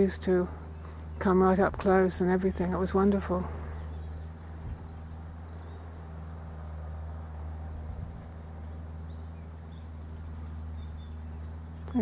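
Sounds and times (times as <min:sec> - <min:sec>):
distant small birds chirping: 0:00.0 - 0:12.0
steady low hum: 0:00.0 - 0:12.0.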